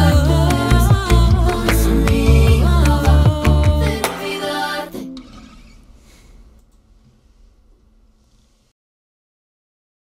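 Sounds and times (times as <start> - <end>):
acoustic guitar strummed chord: 0.2 - 5.3.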